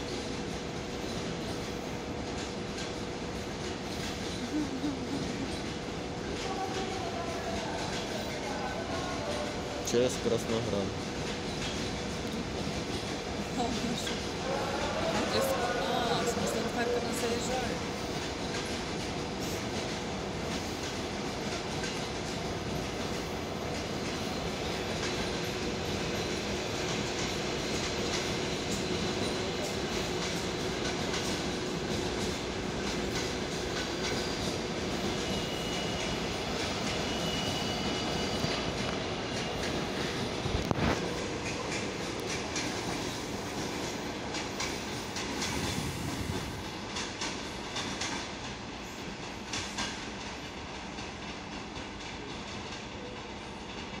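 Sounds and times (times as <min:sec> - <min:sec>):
train wheels clacking over rail joints: 0:00.0 - 0:54.0.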